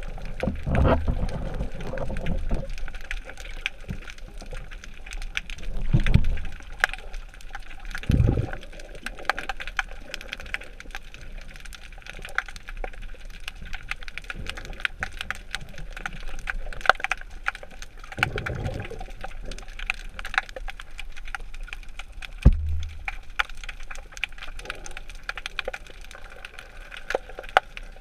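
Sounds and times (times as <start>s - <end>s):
underwater clicks and crackles: 0.0s - 28.0s
low rumbling swells: 22.4s - 23.3s.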